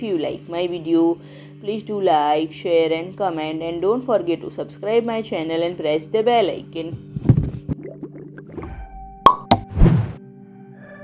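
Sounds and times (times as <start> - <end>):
soft background music: 0.0 - 11.0
cartoon pops: 7.8 - 10.1.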